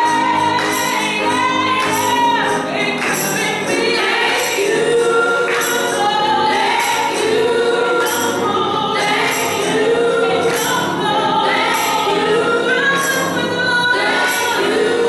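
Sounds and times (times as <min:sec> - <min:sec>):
gospel choir singing: 0:00.0 - 0:15.0.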